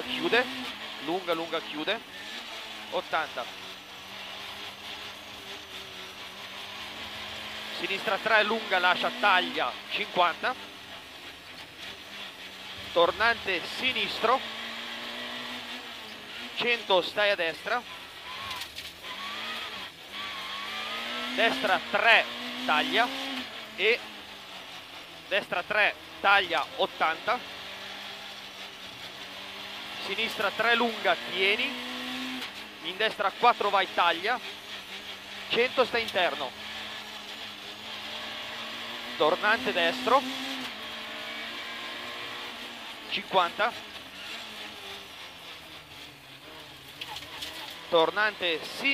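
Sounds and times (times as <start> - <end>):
car engine revving hard: 0.0 - 48.9
road and tyre noise: 0.0 - 48.9.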